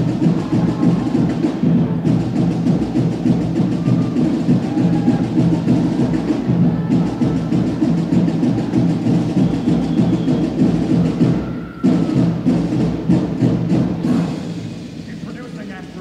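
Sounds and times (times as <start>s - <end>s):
marching drumline cadence: 0.0s - 16.0s.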